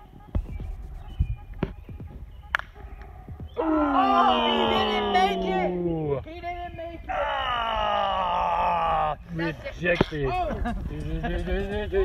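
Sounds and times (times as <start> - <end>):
excited voices: 3.6 - 12.0.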